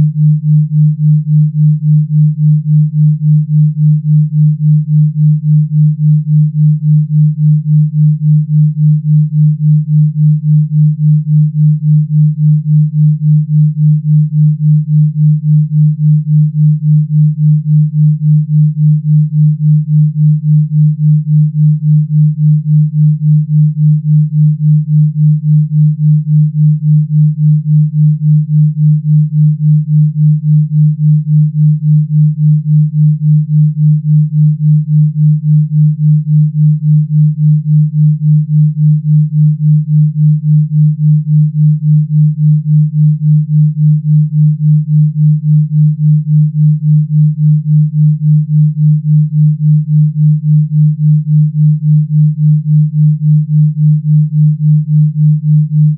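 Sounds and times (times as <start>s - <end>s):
pulsing electronic sine tone: 0.0s - 55.9s.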